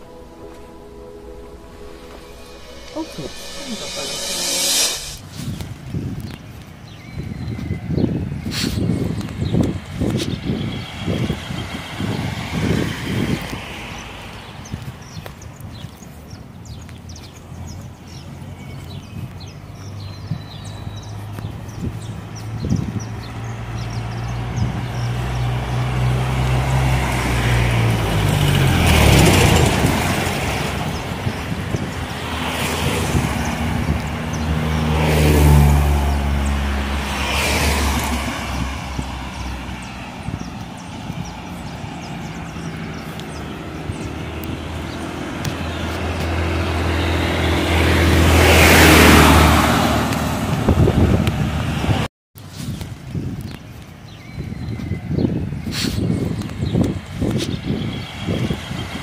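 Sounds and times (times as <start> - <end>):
cars driving past: 0.0 - 7.0, 8.0 - 52.1
low engine hum: 19.8 - 52.1.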